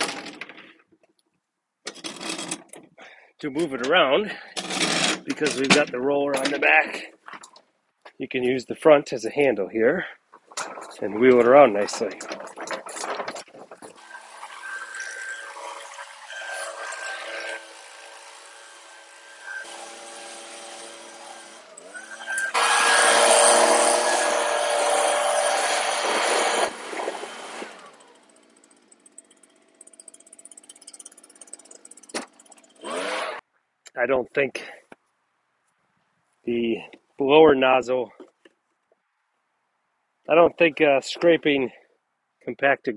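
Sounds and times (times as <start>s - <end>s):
leaf blower engine revving: 20.8s - 33.4s.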